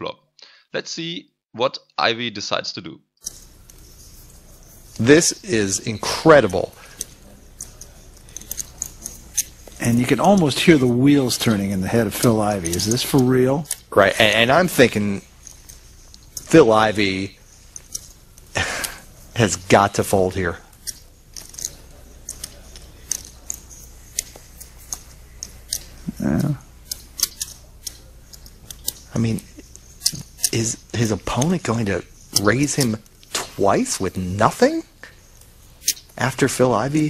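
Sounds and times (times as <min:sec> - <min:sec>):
low room hum: 0:00.8 - 0:37.0
poker chips clicking: 0:06.5 - 0:17.1, 0:19.7 - 0:33.4.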